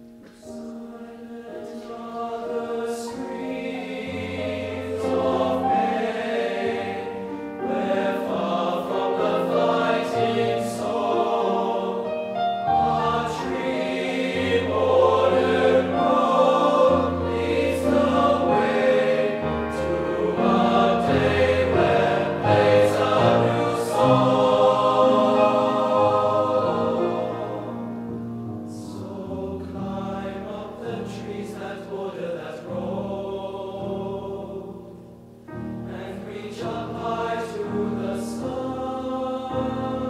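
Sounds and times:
male voice choir singing: 0:00.5 - 0:28.0, 0:28.7 - 0:34.9, 0:35.9 - 0:40.0.

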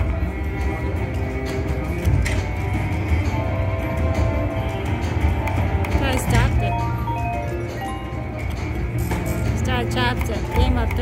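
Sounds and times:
slot machine sound effects: 0:06.0 - 0:09.0.

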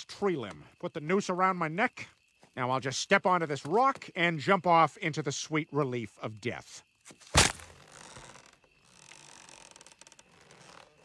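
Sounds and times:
rope snapping taut: 0:07.1 - 0:08.5
rope creaking: 0:07.2 - 0:11.0.

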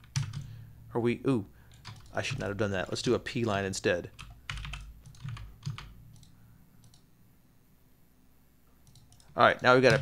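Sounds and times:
computer mouse and keyboard clicks: 0:04.2 - 0:07.1, 0:08.8 - 0:10.0.

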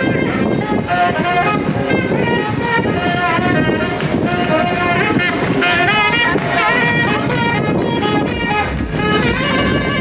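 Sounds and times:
saxophone playing a melody: 0:00.0 - 0:10.0.

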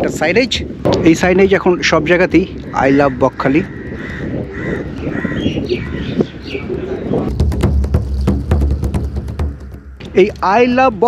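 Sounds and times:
birds chirping: 0:00.0 - 0:11.0
outdoor background noise: 0:00.0 - 0:11.0
music with steady beat: 0:07.3 - 0:10.2.

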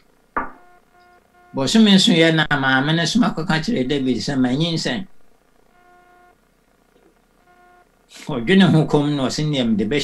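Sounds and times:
faint electronic beeps: 0:00.4 - 0:02.2, 0:05.6 - 0:06.4, 0:07.0 - 0:08.0.

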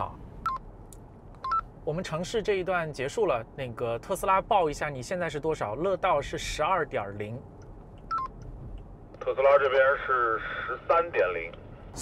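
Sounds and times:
tinny voice over radio: 0:09.2 - 0:11.5.

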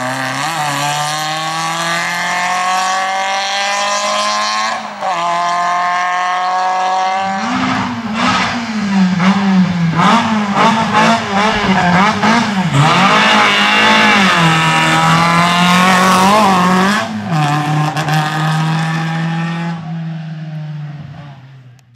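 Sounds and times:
car engine revving hard: 0:00.0 - 0:21.2.

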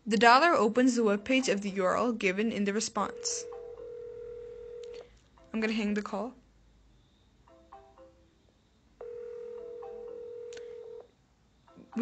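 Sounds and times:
steady telephone tone: 0:03.0 - 0:05.0, 0:09.0 - 0:11.1.

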